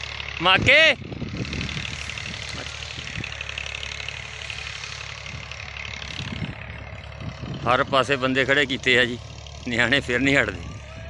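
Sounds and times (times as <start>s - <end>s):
low rumble: 1.0s - 11.0s.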